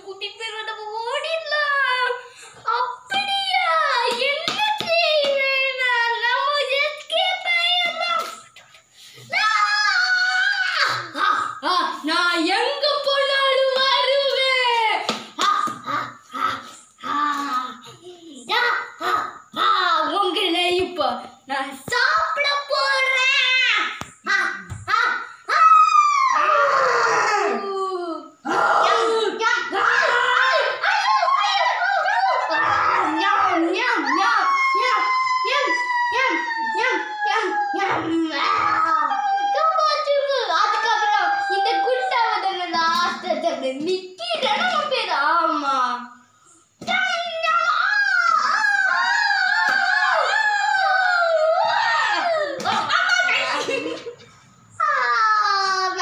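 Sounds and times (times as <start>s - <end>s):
child's high drawn-out voice: 21.9s - 45.8s, 54.8s - 56.0s.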